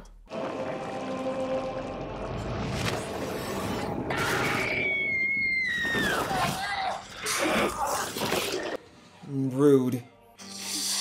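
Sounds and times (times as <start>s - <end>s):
high-pitched scream: 4.1s - 6.7s.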